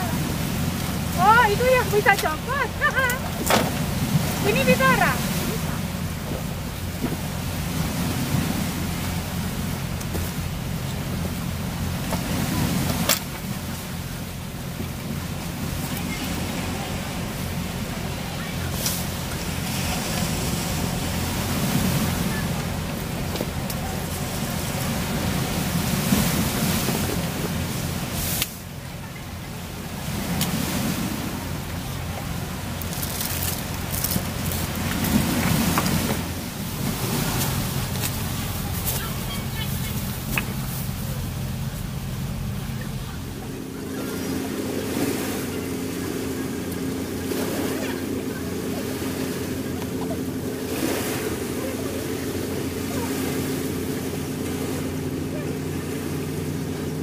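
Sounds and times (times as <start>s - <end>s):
steady low hum: 0.0s - 57.0s
waves washing on rocky shore: 0.0s - 57.0s
wind: 0.0s - 57.0s.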